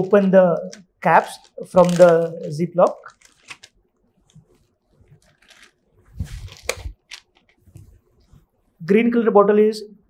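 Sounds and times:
plastic bottles clicking: 0.6s - 3.8s, 5.2s - 5.8s, 6.5s - 7.6s
plastic packaging crinkling: 0.6s - 7.7s.

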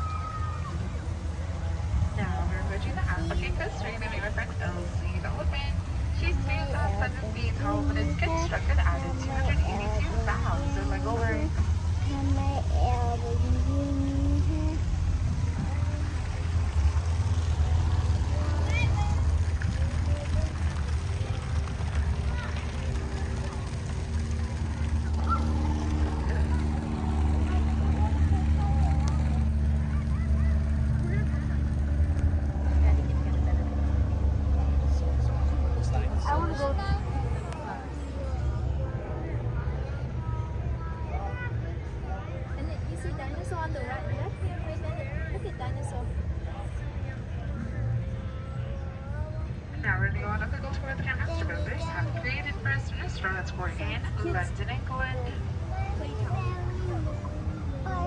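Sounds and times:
boat motor humming: 0.0s - 40.8s
faint voices: 0.0s - 58.0s.

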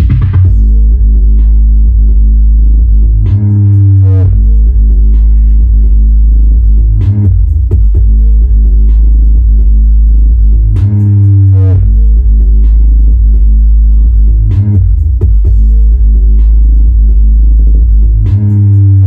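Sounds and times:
bass-heavy electronic music: 0.0s - 19.0s.

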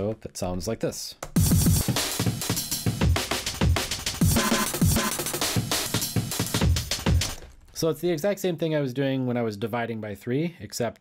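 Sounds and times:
chopped breakbeat drums: 1.3s - 7.8s.

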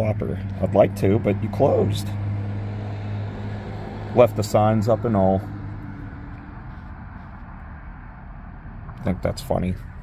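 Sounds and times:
distant road traffic rumble: 0.0s - 10.0s.

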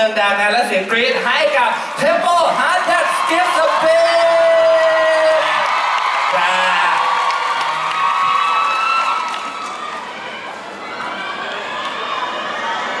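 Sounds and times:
crowd screaming and cheering: 1.8s - 13.0s.

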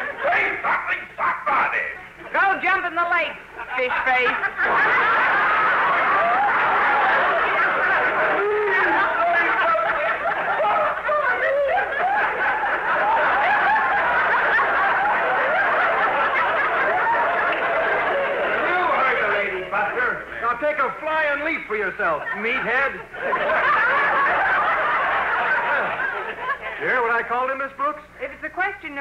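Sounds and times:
audience laughing: 0.0s - 1.0s, 3.4s - 20.9s, 22.0s - 27.2s.

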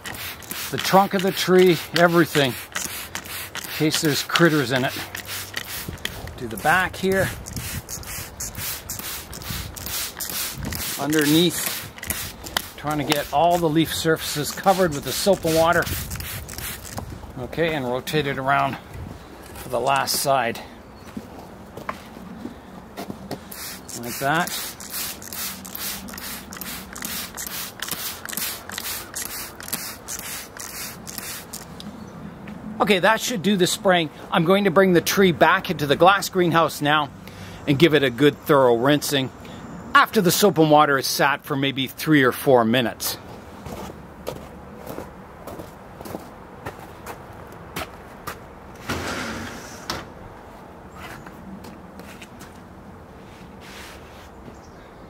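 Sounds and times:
spray bottle squirting: 0.0s - 17.1s, 23.5s - 31.7s
sliding glass door opening: 48.8s - 50.2s.

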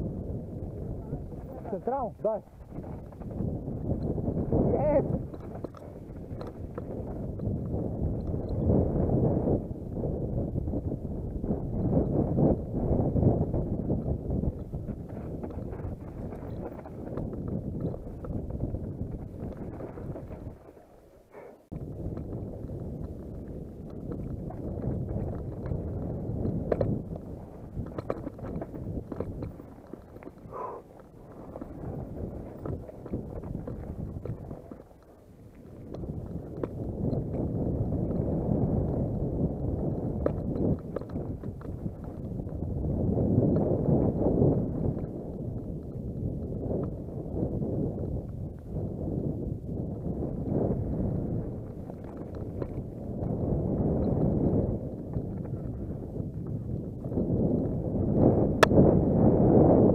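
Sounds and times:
bike rattling: 0.0s - 59.0s
bike tyre rumble: 0.0s - 59.9s
wind buffeting microphone: 0.0s - 59.9s.

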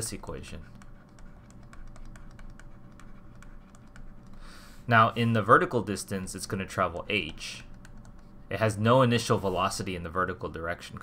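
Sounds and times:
stylus tapping on tablet screen: 0.7s - 4.4s.

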